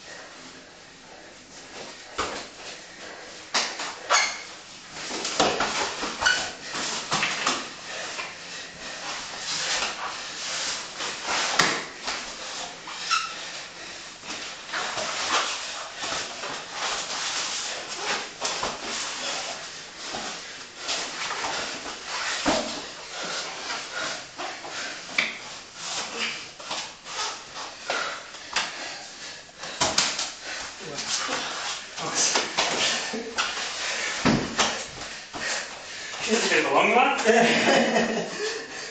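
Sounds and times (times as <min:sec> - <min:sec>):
heavy breathing: 0:19.1 - 0:36.4, 0:38.4 - 0:38.9
bodies thudding on mats: 0:34.2 - 0:35.4.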